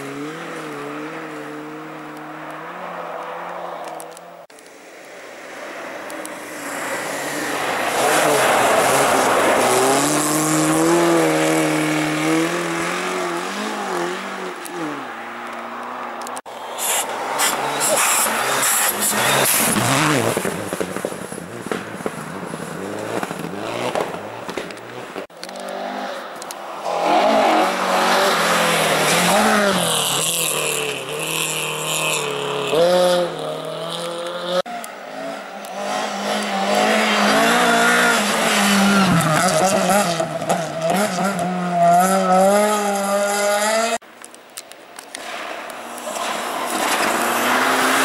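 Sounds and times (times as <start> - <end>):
rally car engines revving: 0.0 - 4.2, 6.1 - 44.0, 45.2 - 48.0
tyres hissing on snow: 16.6 - 19.8.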